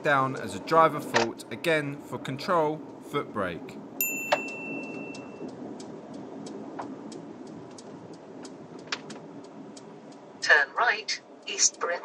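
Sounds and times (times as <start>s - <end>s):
car road and engine hum: 0.0s - 12.0s
faint regular ticking: 3.7s - 12.0s.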